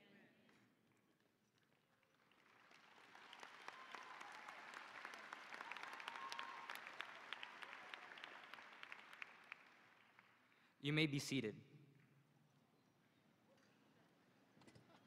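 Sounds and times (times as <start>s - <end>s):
faint distant applause: 2.0s - 10.6s.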